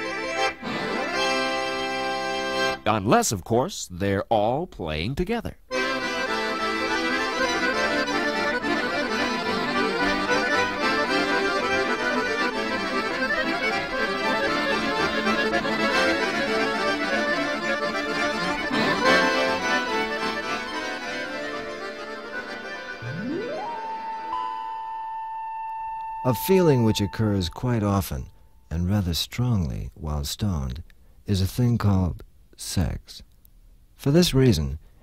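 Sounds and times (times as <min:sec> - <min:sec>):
accordion music: 0:00.0 - 0:02.9, 0:05.7 - 0:28.4
tone sweeping up in pitch: 0:23.0 - 0:28.4.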